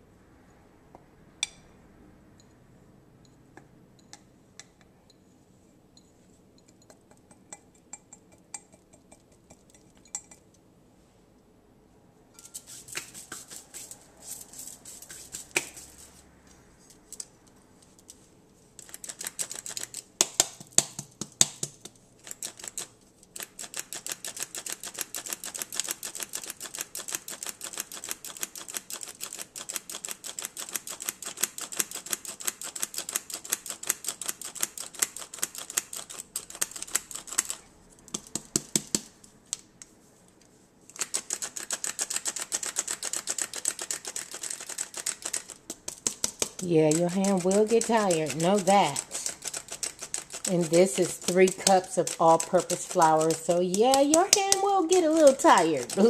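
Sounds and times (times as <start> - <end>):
flour sifter clicking: 41.8 - 56.0.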